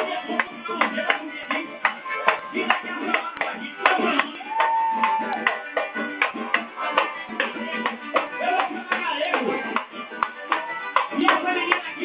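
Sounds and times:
percussion strikes: 0.0 - 12.0
samba band playing: 0.0 - 12.0.

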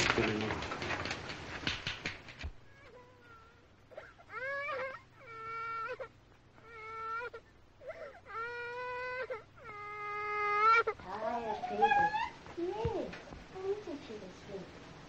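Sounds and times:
baby crying: 2.7 - 12.4.

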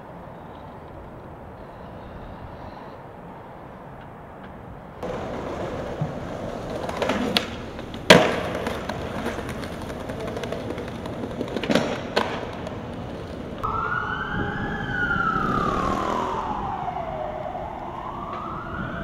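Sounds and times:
skateboard hitting pavement: 5.0 - 13.6
emergency vehicle siren wailing: 13.6 - 19.0.

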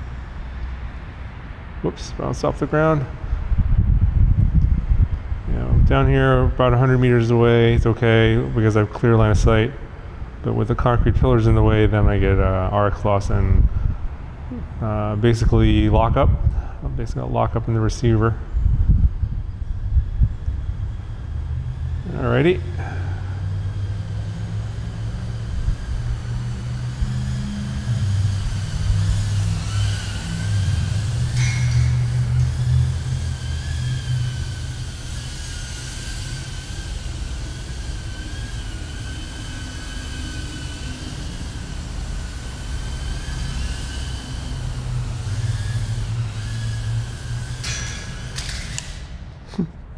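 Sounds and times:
low rumble: 3.1 - 49.5
drone motors whining: 18.1 - 49.3.

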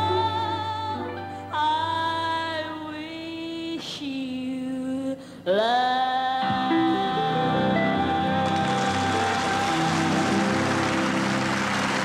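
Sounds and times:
woman singing a slow ballad: 0.0 - 10.7
singer breathing: 5.2 - 5.5
band playing: 7.0 - 12.0.

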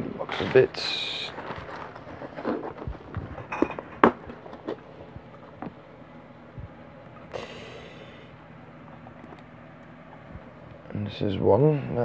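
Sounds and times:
plastic parts clicking and rustling: 0.2 - 4.8.

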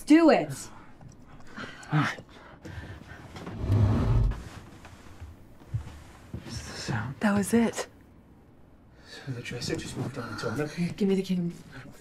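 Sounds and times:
dresser scraping across floor: 3.4 - 5.2.

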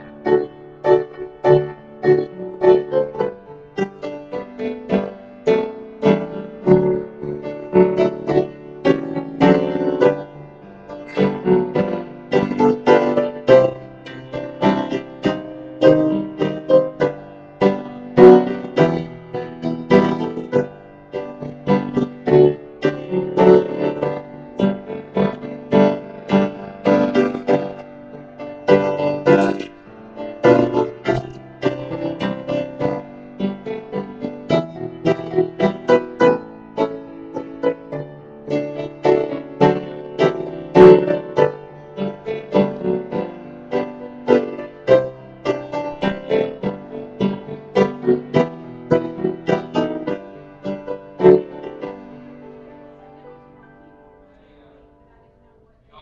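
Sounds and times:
solo piano chords and melody: 0.0 - 56.0.

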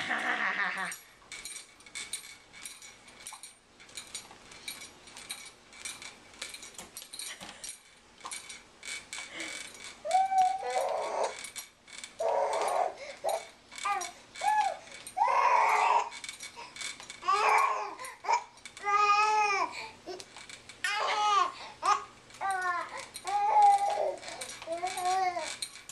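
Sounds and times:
baby jumper clicks and rattles: 0.0 - 25.9
baby squealing and babbling: 10.0 - 11.4, 12.2 - 16.1, 20.9 - 25.5.

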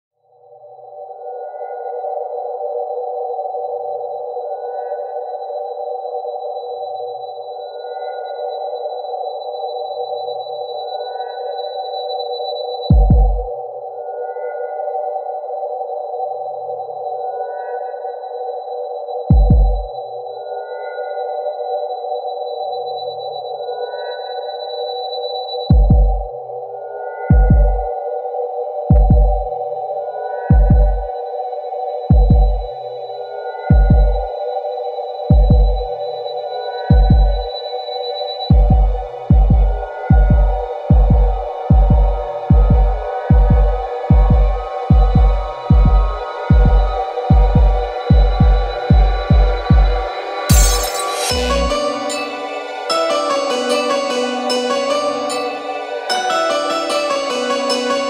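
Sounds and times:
heavy deep kick drums: 12.9 - 13.5, 19.3 - 19.9, 25.7 - 26.3, 27.3 - 27.9, 28.9 - 29.5, 30.5 - 31.1, 32.1 - 32.7, 33.7 - 34.2, 35.3 - 35.8, 36.9 - 37.4, 38.5 - 50.7
thin steady high tone: 29.5 - 58.0.

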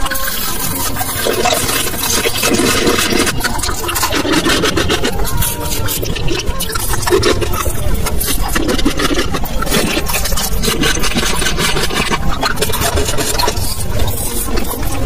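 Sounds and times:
hard candy being sucked: 0.0 - 15.0.

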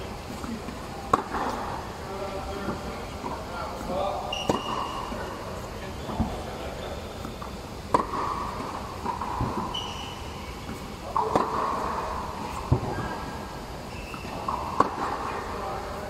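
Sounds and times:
tennis ball hit with racket: 0.3 - 1.7, 4.3 - 5.2, 7.2 - 13.2, 14.1 - 15.5.

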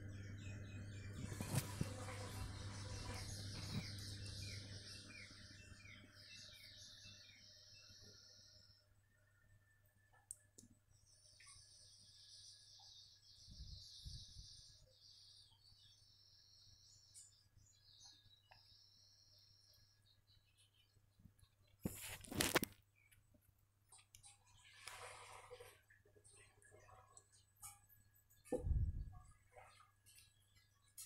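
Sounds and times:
low steady hum: 0.0 - 21.4
faint high-pitched chirping: 0.0 - 23.2.

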